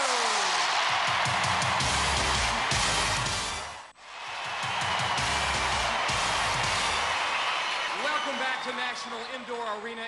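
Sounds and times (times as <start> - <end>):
television theme music: 0.0 - 10.0.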